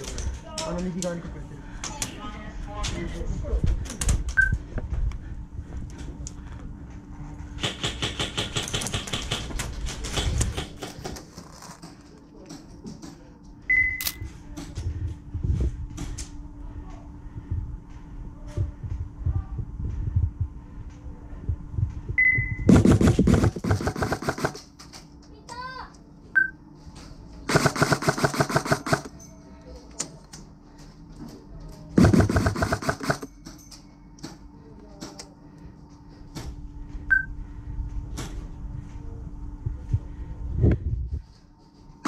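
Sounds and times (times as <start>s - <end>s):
airsoft gun full-auto burst: 22.7s - 24.6s, 27.5s - 29.1s, 32.0s - 33.3s.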